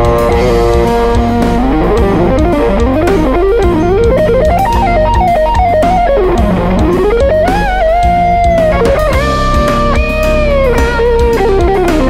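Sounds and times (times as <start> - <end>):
backing drums and bass: 0.0 - 12.0
electric guitar solo: 0.0 - 12.0.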